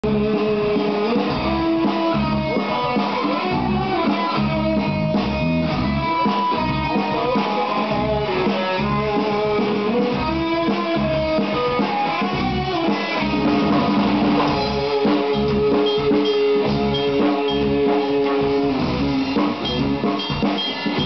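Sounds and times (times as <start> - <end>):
electric guitar rock riff: 0.0 - 21.0.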